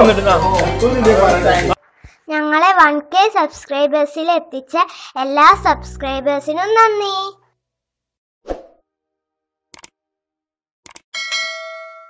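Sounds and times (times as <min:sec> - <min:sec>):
quick double clicks: 0:10.8 - 0:11.1
bell ding: 0:11.2 - 0:12.0.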